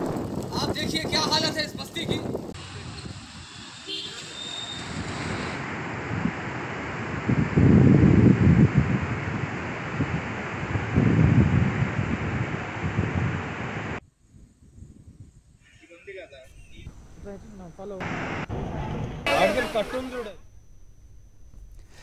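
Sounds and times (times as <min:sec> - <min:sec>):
wind buffeting microphone: 0:00.0 - 0:03.5, 0:05.0 - 0:15.6
steady rushing noise: 0:05.1 - 0:14.0.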